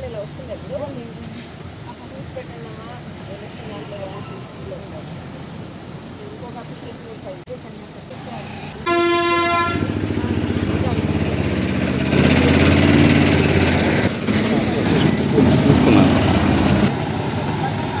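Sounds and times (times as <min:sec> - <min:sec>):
engine running: 0:07.9 - 0:18.0
vehicle horn toot: 0:08.8 - 0:09.9
background voices: 0:14.1 - 0:18.0.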